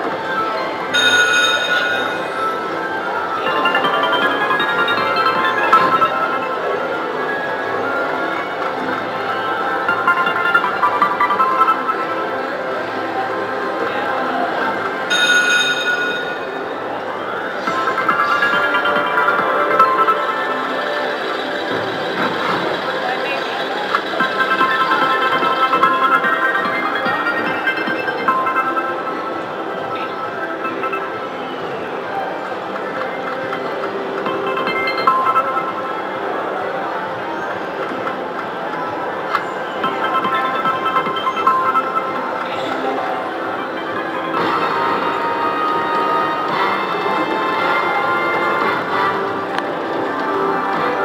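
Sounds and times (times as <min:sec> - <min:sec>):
slot machine music with chimes: 0:00.1 - 0:38.4, 0:39.1 - 0:51.0.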